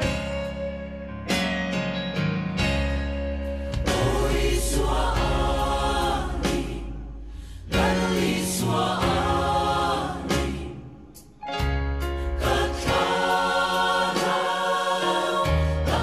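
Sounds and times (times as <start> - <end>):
instrumental backing with bass: 0.0 - 16.0
choir singing gospel song: 3.8 - 11.3, 12.2 - 16.0.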